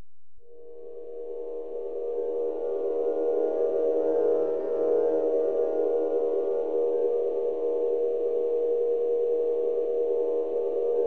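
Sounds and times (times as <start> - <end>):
ambient drone of held tones: 0.4 - 11.0.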